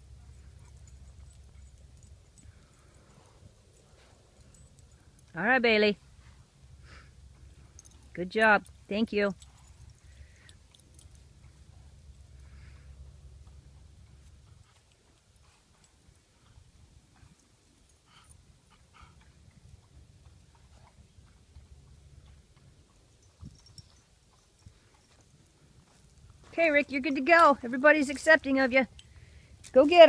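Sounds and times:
faint low rumble: 0.0 - 26.8
faint ticks: 28.9 - 29.8.

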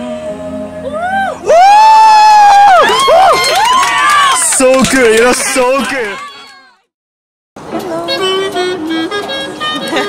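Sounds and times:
music with sustained notes: 0.0 - 1.5, 7.7 - 10.0.

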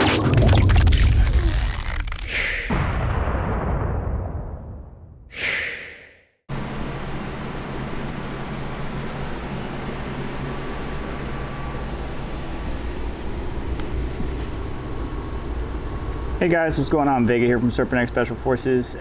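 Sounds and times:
computer cooling fans humming: 6.5 - 19.0.

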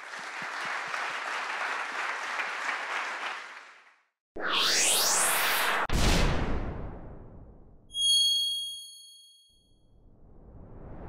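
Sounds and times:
bright high chime ding: 7.9 - 9.7.

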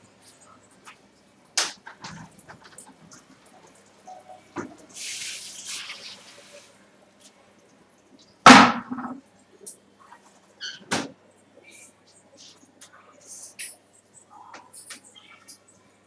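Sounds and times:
hiss: 4.9 - 6.7.

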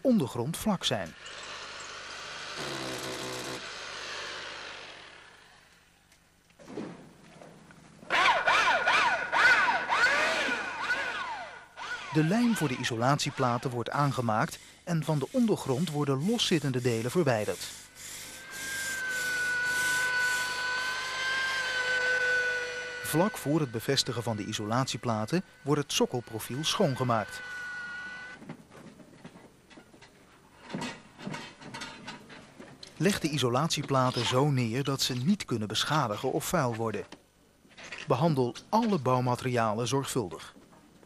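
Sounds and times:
power tool hissing: 11.8 - 28.2
hiss: 14.5 - 20.5.

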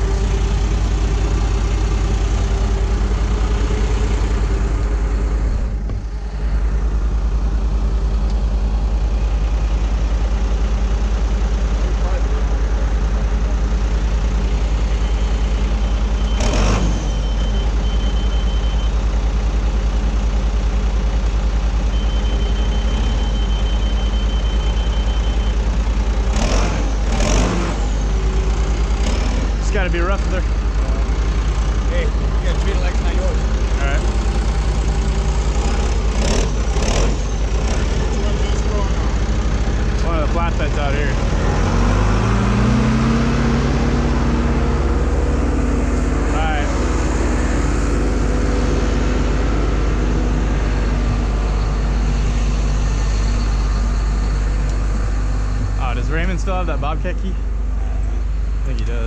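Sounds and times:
diesel engine running: 0.0 - 59.0
rapid electronic warning beeping: 16.1 - 19.0, 21.9 - 25.7.

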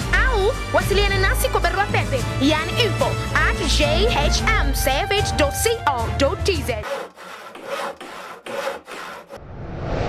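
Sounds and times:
hand saw cutting wood: 6.5 - 9.4.

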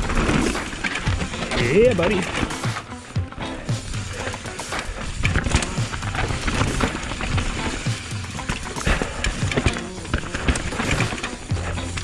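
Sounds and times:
mountain bike clattering: 0.0 - 12.0
tyre noise on dirt: 0.0 - 12.0.

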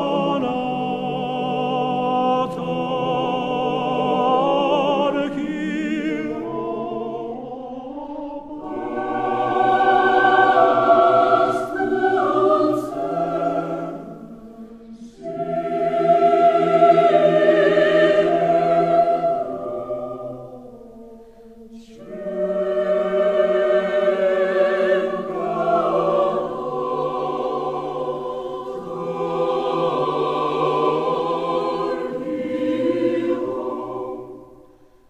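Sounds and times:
choir singing slow choral song: 0.0 - 35.0.

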